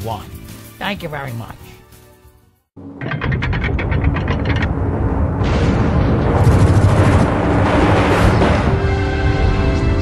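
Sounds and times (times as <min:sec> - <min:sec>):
heavy low rumble: 0:02.8 - 0:09.7.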